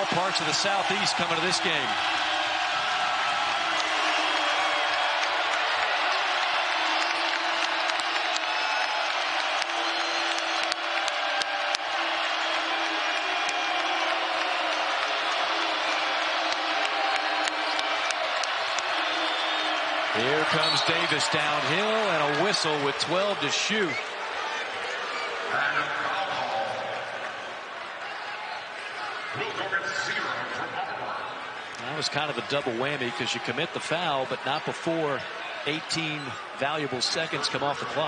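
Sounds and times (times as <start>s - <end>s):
arena crowd din: 0.0s - 38.0s.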